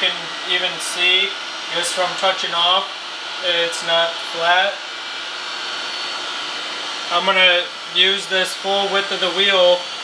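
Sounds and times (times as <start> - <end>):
grinding wheel whirring: 0.0 - 10.0.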